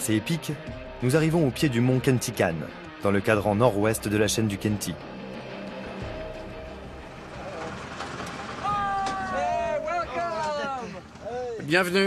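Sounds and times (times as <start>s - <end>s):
van engine running: 5.4s - 10.1s.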